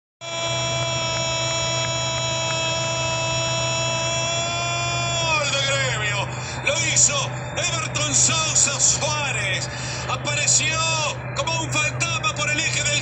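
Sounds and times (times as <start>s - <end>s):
commentator's drawn-out goal cry: 0.2s - 9.4s
commentator speaking: 0.2s - 13.0s
steady low hum: 0.2s - 13.0s.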